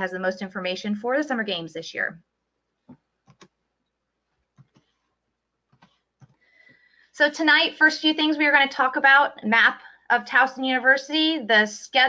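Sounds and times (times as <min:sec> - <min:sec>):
computer mouse clicks: 0:02.9 - 0:05.0, 0:05.7 - 0:06.4.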